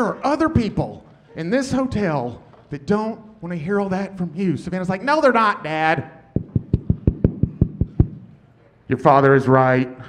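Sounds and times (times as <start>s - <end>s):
rapid sharp taps: 6.4s - 8.2s.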